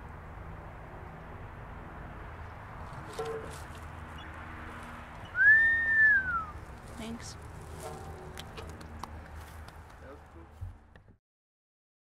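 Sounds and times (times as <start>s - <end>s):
high whistle-like tone: 5.3s - 6.6s.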